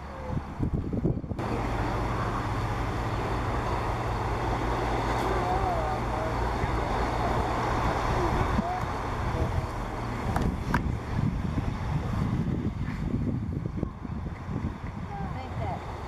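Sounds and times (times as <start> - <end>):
faint distant voices: 0.0 - 11.2
outdoor background noise: 0.0 - 16.0.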